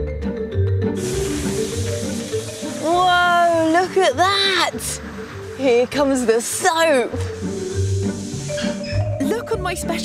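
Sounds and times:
background music: 0.0 - 10.0
hiss of spraying liquid: 1.0 - 3.0, 7.1 - 8.9.

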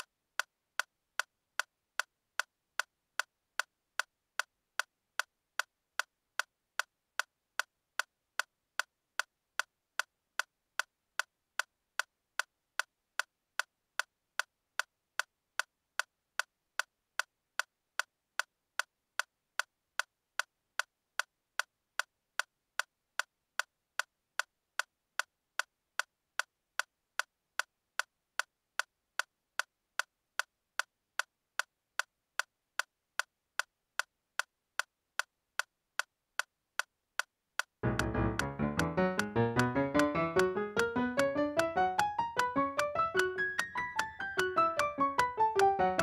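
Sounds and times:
metronome clicking: 0.0 - 46.0.

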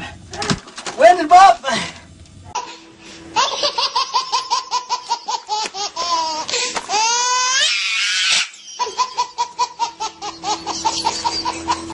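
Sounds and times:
person laughing hard: 2.6 - 7.2, 8.3 - 11.9
person squealing: 6.2 - 9.1.

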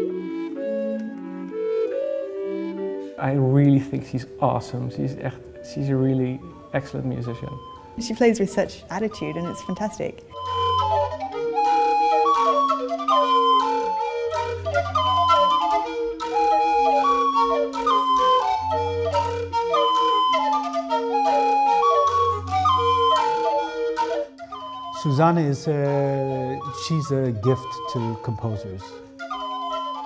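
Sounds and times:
low held notes: 0.0 - 29.2
recorder playing short notes: 5.4 - 30.0.

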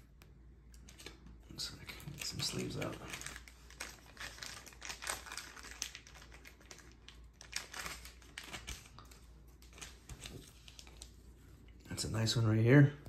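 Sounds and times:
plastic sleeves rustling: 0.6 - 12.4.

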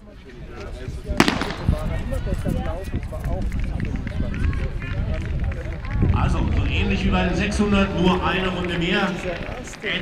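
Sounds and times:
voices: 0.6 - 10.0
starting pistol crack: 1.2 - 2.0.

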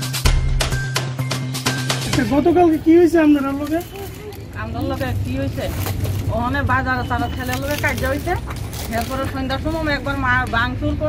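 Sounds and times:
woman speaking: 3.8 - 11.0.

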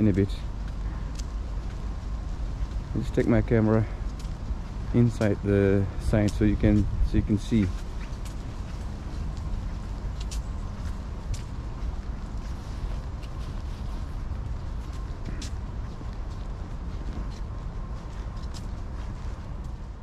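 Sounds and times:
city street rumble: 0.0 - 20.0.

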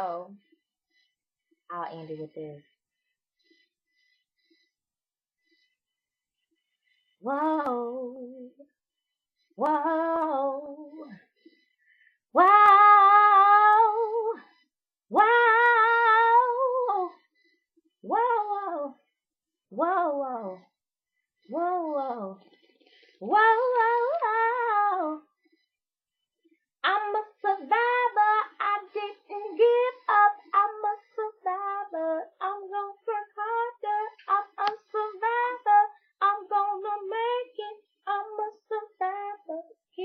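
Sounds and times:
woman singing a cappella: 0.0 - 0.4, 7.2 - 8.7, 9.6 - 11.2, 12.3 - 14.5, 15.1 - 17.2, 18.0 - 19.0, 19.7 - 20.7, 21.5 - 22.5, 23.2 - 25.3, 26.8 - 40.0.

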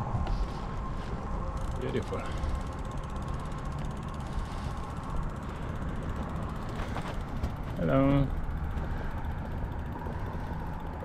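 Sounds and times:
bicycle freewheel ticking: 0.0 - 11.0
bicycle tyres rumbling: 0.0 - 11.0
wind: 0.0 - 11.0.

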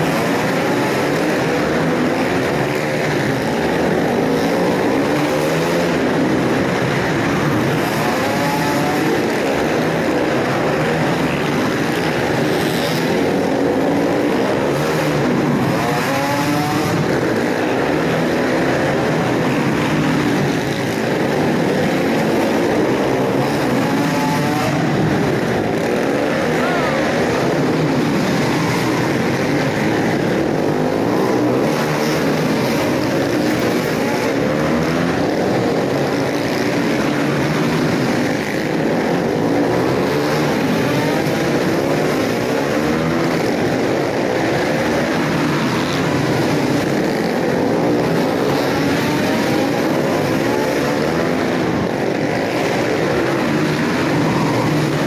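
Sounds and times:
motorcycle engines revving: 0.0 - 55.0.

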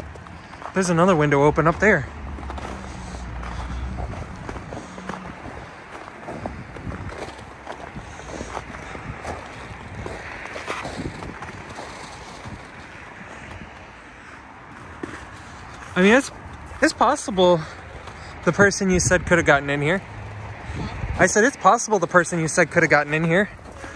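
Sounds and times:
wind on microphone: 6.3 - 11.7, 20.6 - 21.2.

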